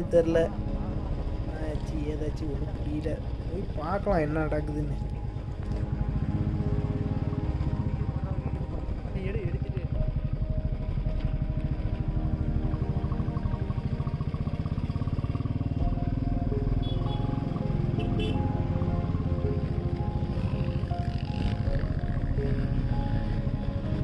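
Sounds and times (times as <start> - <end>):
motorcycle engine running: 0.0 - 24.0.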